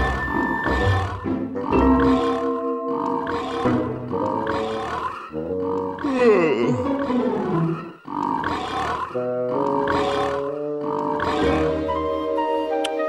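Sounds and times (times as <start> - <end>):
cartoon cat roaring: 6.0 - 7.0
music with held notes: 11.4 - 13.0.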